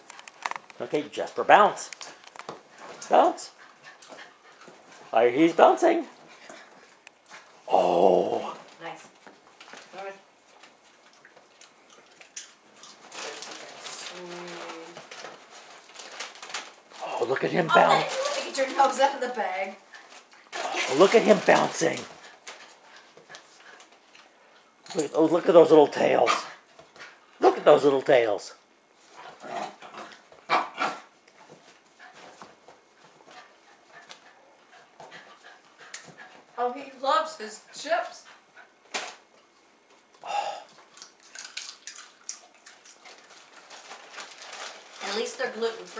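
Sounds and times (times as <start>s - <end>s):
dogs rustling and scuffling: 1.6s - 7.7s, 8.5s - 27.4s, 28.9s - 40.1s, 41.3s - 45.9s.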